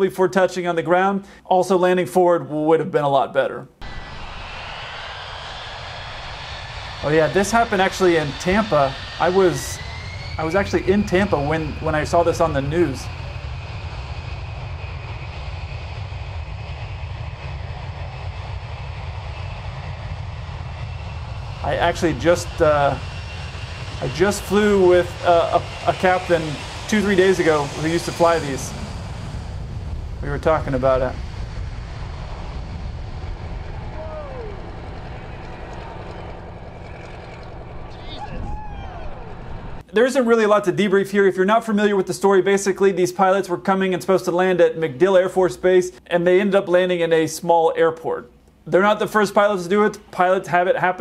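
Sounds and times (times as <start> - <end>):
jet engines running: 3.7 - 51.0
bystanders exclaiming: 33.8 - 34.8, 37.9 - 39.6.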